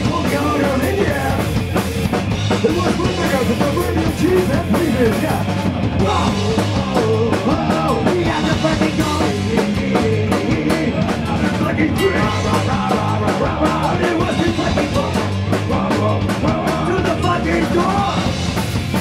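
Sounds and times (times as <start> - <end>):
electric bass: 0.0 - 19.0
pounding drum kit: 0.0 - 19.0
punk rock band playing: 0.0 - 19.0.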